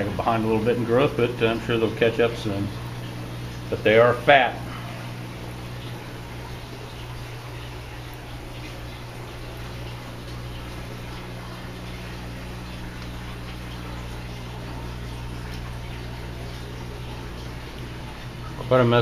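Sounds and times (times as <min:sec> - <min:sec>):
low electrical hum: 0:00.0 - 0:19.0
water trickling and splashing: 0:00.0 - 0:19.0.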